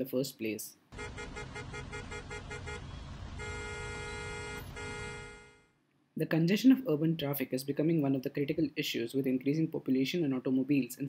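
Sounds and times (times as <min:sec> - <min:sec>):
low traffic noise: 0:00.9 - 0:05.6
car horn tooting: 0:01.0 - 0:05.7.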